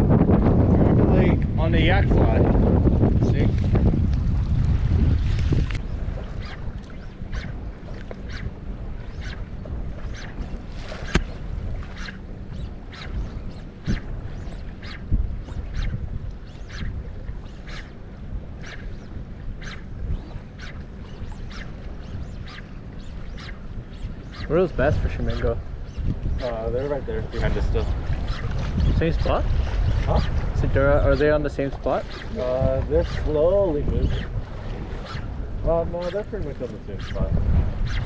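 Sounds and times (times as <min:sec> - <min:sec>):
faint motor hum: 0:00.0 - 0:38.0
wind buffeting microphone: 0:00.0 - 0:38.0.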